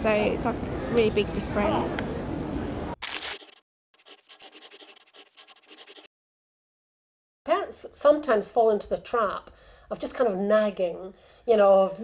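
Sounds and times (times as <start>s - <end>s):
busy street noise: 0.0s - 3.0s.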